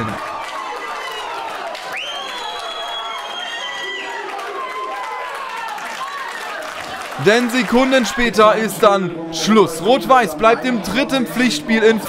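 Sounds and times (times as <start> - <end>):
crowd and players shouting and cheering: 0.0 - 12.0
long high whistle: 1.9 - 4.1.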